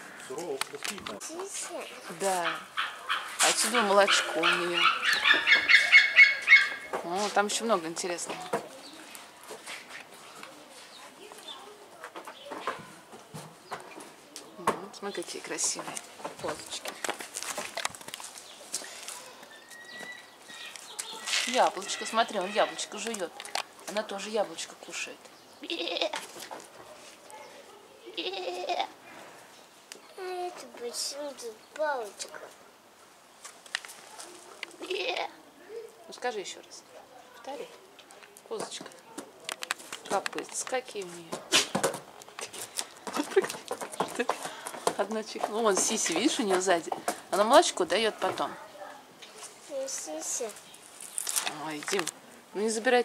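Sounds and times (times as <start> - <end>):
goat bleating: 25.6 - 26.2, 28.1 - 29.0, 34.8 - 35.4.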